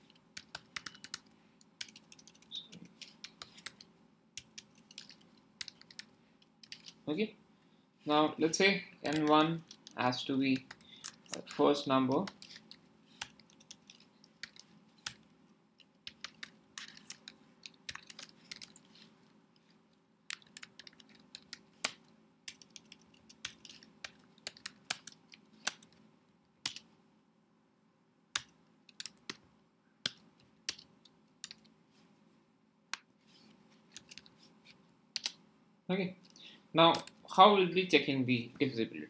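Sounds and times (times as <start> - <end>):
faint steady hum: 0.0 - 39.0.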